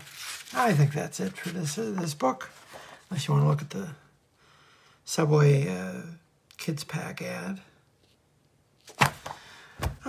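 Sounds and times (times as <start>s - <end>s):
comic book knocking on table: 8.9s - 10.0s
paper slapping: 8.9s - 10.0s.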